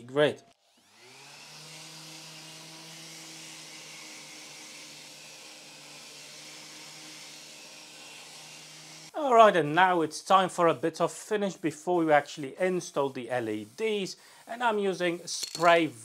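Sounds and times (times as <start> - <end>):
orbital sander on wood: 0.6 - 9.2
dust extraction hose hiss: 10.3 - 16.0.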